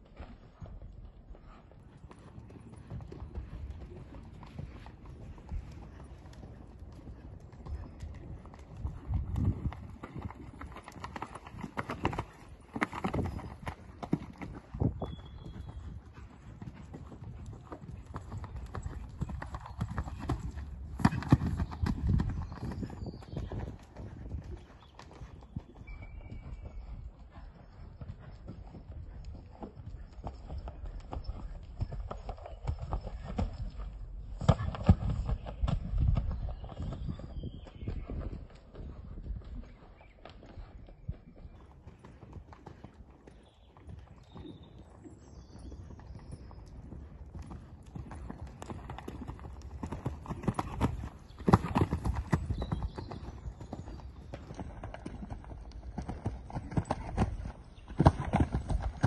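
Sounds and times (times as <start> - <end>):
horse hoofbeats on sand: 0.1 - 59.0.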